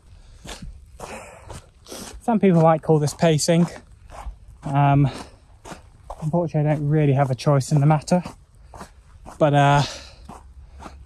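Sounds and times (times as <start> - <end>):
footsteps walking: 0.2 - 11.0.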